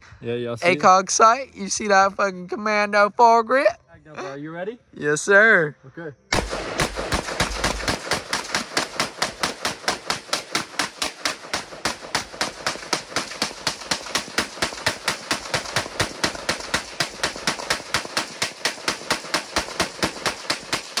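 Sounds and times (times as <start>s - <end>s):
rifle firing rapid shots: 6.3s - 21.0s.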